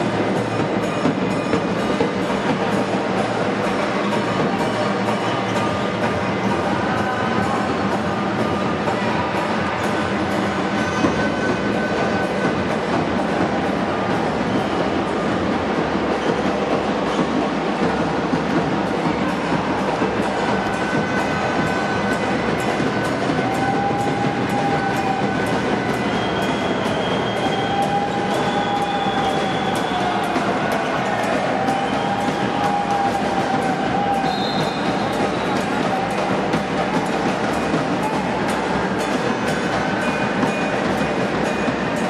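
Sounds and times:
basketball game din in a hall: 0.0s - 42.0s.

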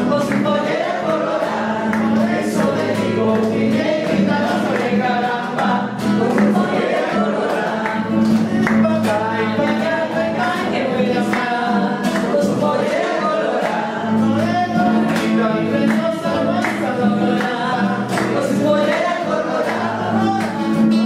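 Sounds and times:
acoustic guitars strumming: 0.0s - 21.0s
group of voices singing: 0.0s - 21.0s.

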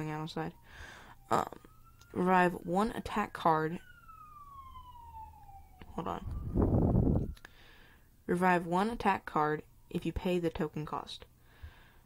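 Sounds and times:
distant siren wailing: 0.0s - 10.9s.

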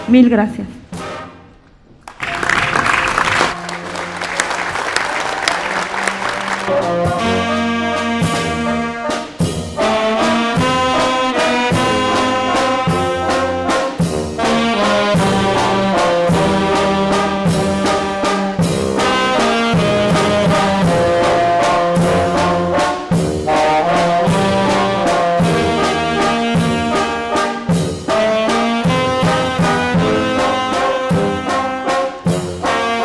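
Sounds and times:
wind band playing: 0.9s - 33.0s.

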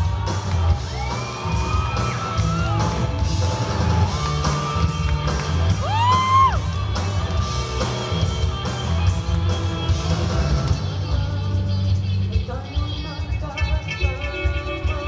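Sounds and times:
drum kit: 0.0s - 15.0s
heavy bass line: 0.0s - 15.0s.

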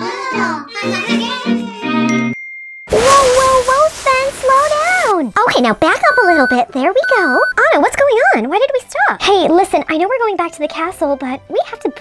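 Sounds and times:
bright ding chime: 2.1s - 3.0s.

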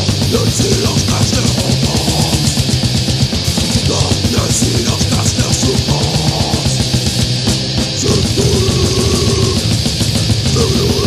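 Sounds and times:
fast dense drumming: 0.0s - 11.0s
heavily distorted low guitars: 0.0s - 11.0s.

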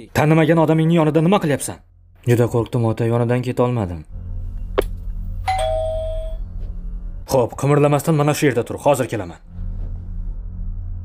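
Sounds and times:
two-note doorbell chime: 5.4s - 6.6s.

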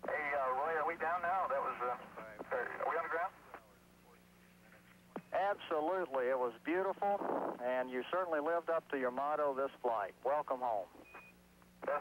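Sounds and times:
man talking over two-way radio: 0.0s - 4.3s
faint radio hiss: 0.0s - 12.0s
steady hum: 0.0s - 12.0s.

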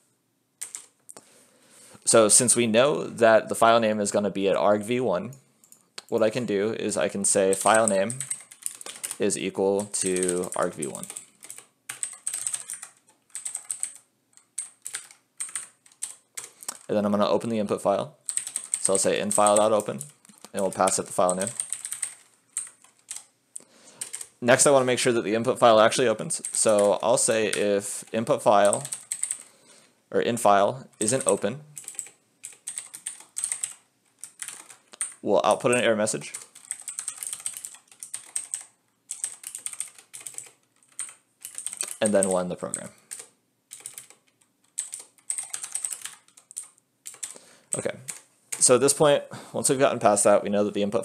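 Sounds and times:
computer keyboard typing: 0.6s - 1.0s, 7.3s - 17.6s, 18.2s - 23.3s, 24.0s - 24.9s, 25.6s - 29.5s, 31.0s - 48.8s.

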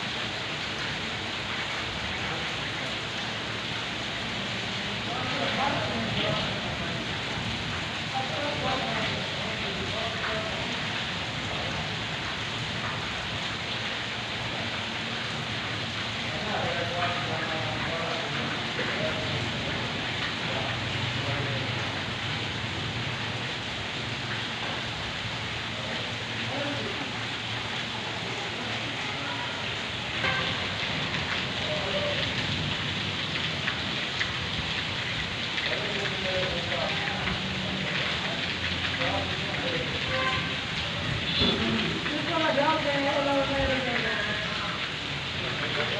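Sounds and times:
sharp drips: 0.0s - 45.9s
steady rain falling: 0.0s - 45.9s.

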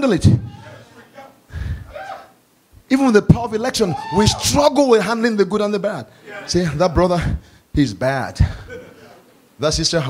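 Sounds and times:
man preaching over a microphone: 0.0s - 1.4s, 2.9s - 8.6s
breathing: 1.5s - 1.9s, 7.3s - 7.7s.

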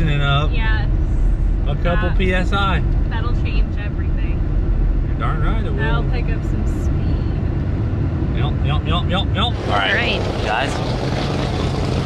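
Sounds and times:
car engine rumble: 0.0s - 12.0s
road noise inside car: 0.0s - 12.0s.

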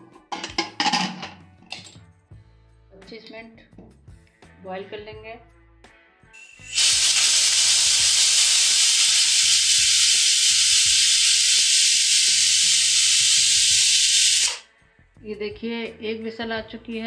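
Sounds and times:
pressure cooker whistle hiss: 6.4s - 14.7s.

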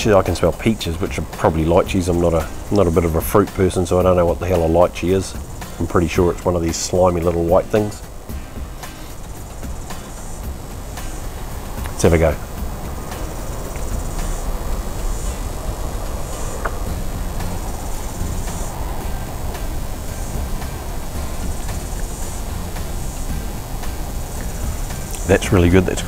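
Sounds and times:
insects chirping: 0.0s - 26.0s
steady low rumble: 0.0s - 26.0s.

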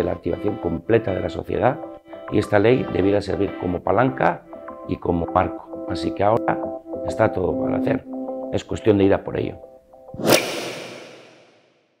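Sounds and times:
whoosh sound effect: 10.2s - 11.6s.

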